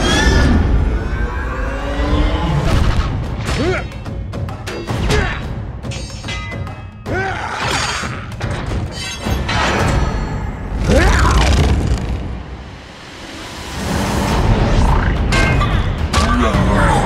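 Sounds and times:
dramatic orchestral score: 0.0s - 17.0s.

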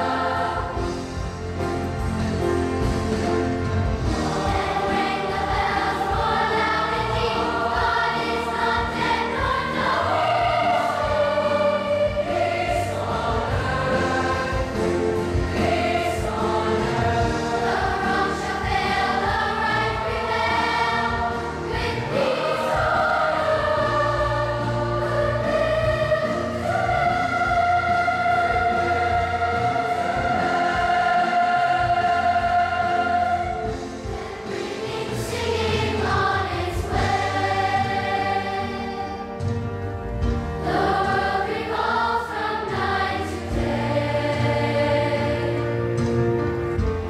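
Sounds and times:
children's choir singing: 0.0s - 47.0s.

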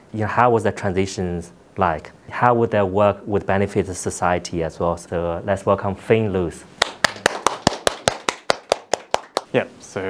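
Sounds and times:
hand clapping: 6.8s - 9.5s.

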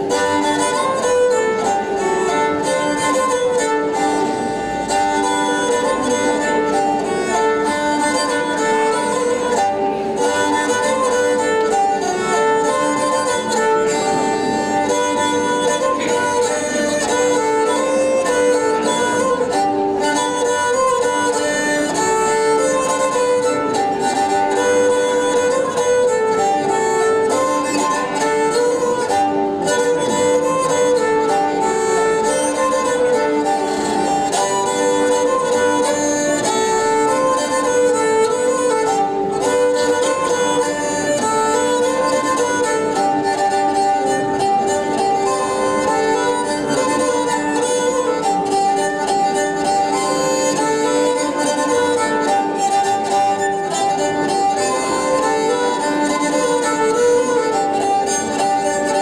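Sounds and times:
bowed fiddle melody: 0.0s - 59.0s
fiddle drone note: 0.0s - 59.0s.

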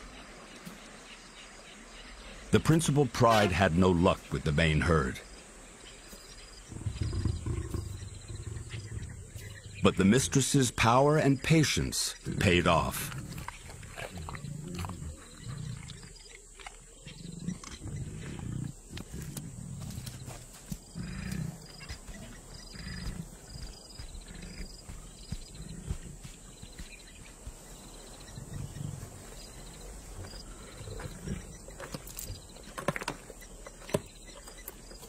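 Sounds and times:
lions growling: 6.6s - 10.4s, 12.1s - 32.8s.

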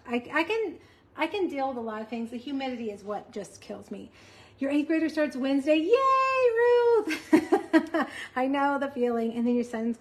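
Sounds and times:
woman laughing: 7.0s - 8.4s.

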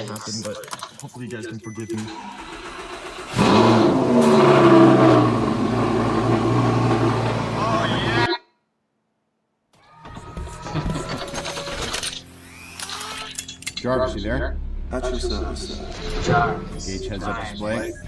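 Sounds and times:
sports car engine revving: 2.7s - 8.2s.

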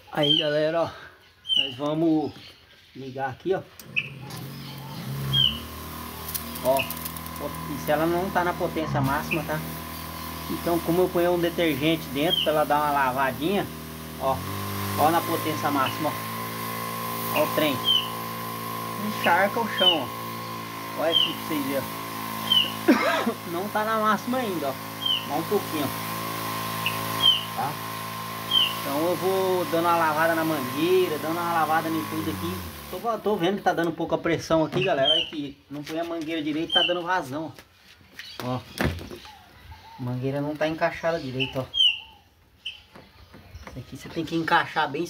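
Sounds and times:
sprayer pump motor humming: 3.7s - 37.2s.

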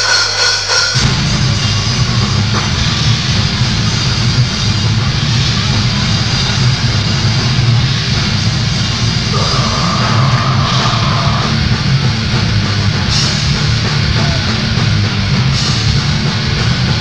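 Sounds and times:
grindcore band playing live: 0.0s - 17.0s.

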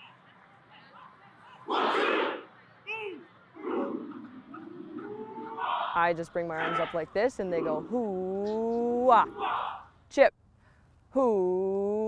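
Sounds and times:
group shouting: 1.6s - 4.2s, 9.3s - 9.8s.

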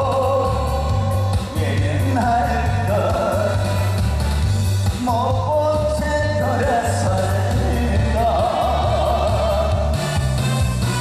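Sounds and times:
man singing into microphone: 0.0s - 4.0s, 5.0s - 10.1s
backing music with bass line: 0.0s - 11.0s.

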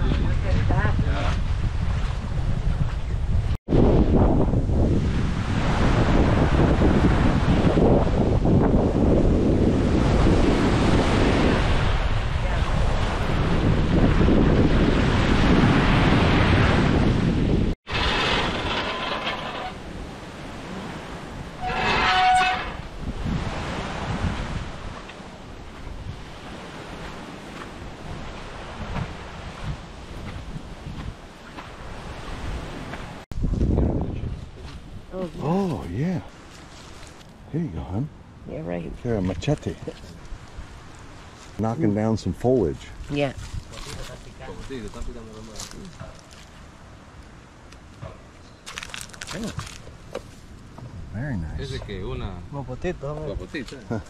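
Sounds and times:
wind buffeting microphone: 0.0s - 18.8s, 19.6s - 54.0s
outdoor ambience: 17.9s - 24.1s, 44.0s - 51.8s.

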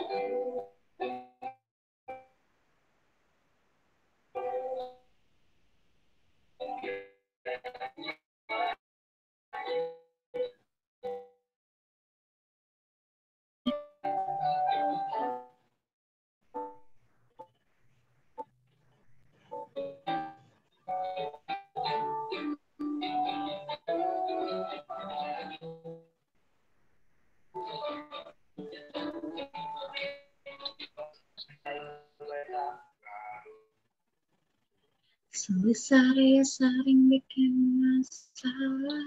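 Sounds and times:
recorded march song with voices: 21.0s - 25.9s, 27.6s - 33.4s.

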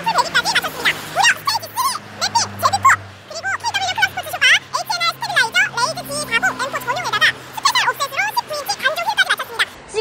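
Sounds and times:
sped-up squeaky woman's voice: 0.0s - 10.0s.

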